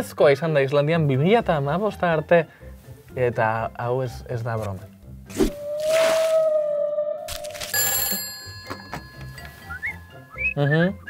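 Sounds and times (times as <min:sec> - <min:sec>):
telephone bell ringing: 0:07.7 - 0:10.4.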